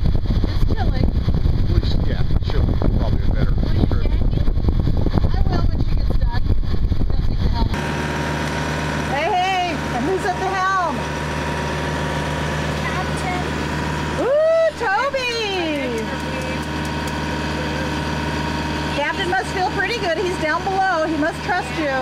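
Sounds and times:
boat engine humming: 0:00.0 - 0:22.0.

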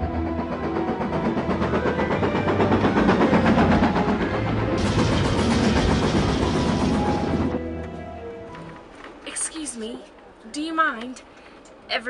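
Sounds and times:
steam locomotive exhaust beating: 0:00.0 - 0:07.8.

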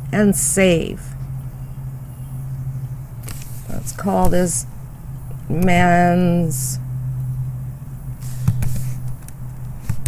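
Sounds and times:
low hum with rumble: 0:00.0 - 0:10.0.

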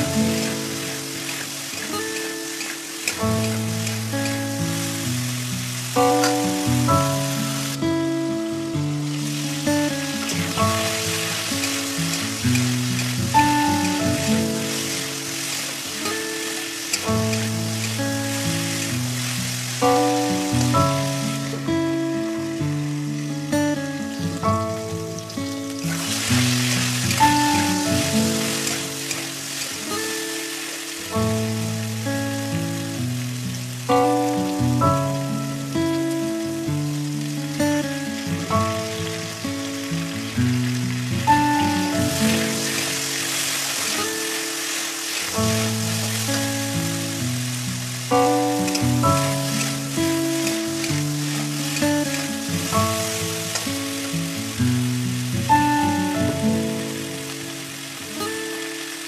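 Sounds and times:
instrumental background music: 0:00.0 - 0:59.0
vegetables sizzling in oil: 0:00.0 - 0:59.0.

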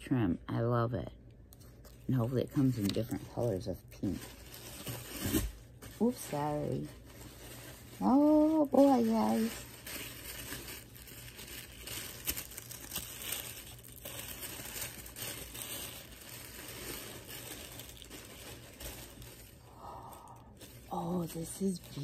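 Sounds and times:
tissue paper crinkling: 0:01.6 - 0:22.0.

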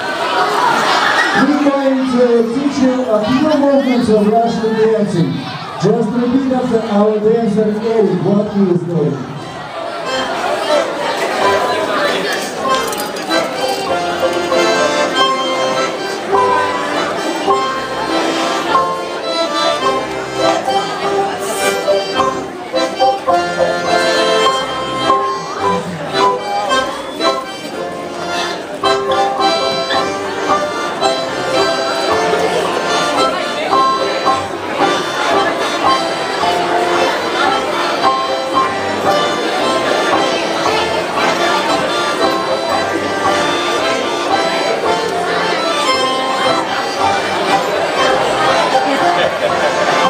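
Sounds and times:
button accordion folk dance tune: 0:00.0 - 0:50.0.

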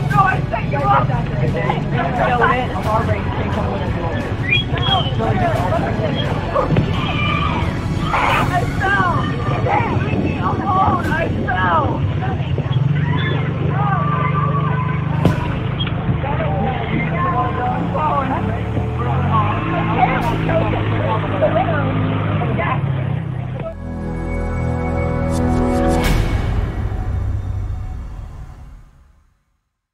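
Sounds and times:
voices calling and chattering: 0:00.0 - 0:26.4.

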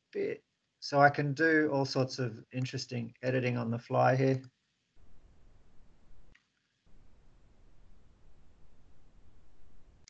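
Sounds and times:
faint microphone room noise: 0:00.0 - 0:10.0.

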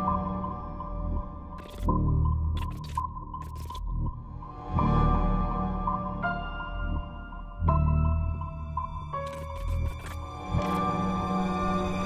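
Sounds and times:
droning film music: 0:00.0 - 0:12.0
sharp clicks: 0:09.2 - 0:10.8.

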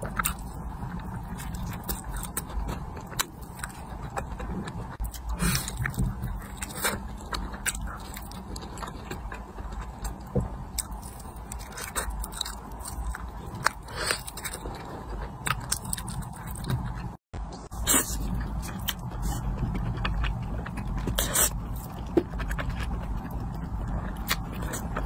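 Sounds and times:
chicken crunching and chewing: 0:00.0 - 0:17.2, 0:18.0 - 0:25.0
low steady hum: 0:00.0 - 0:25.0.

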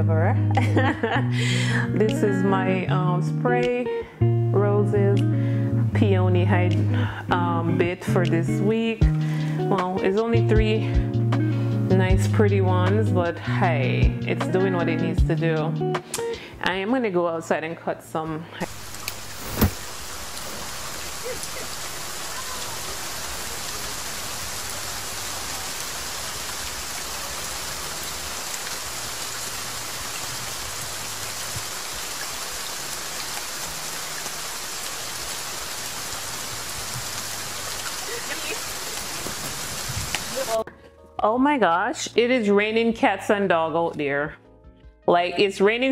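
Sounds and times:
heavy rain on concrete: 0:18.6 - 0:40.6
sharp knock: 0:19.4 - 0:19.8.

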